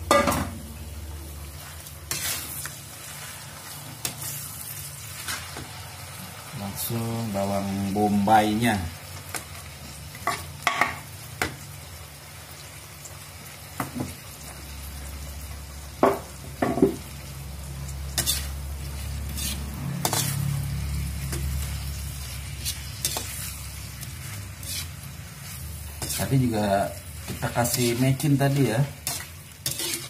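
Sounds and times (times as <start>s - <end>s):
shrimp and onion sizzling in a wok: 0.0s - 30.0s
metal spatula scraping a wok: 1.6s - 6.4s, 18.1s - 30.0s.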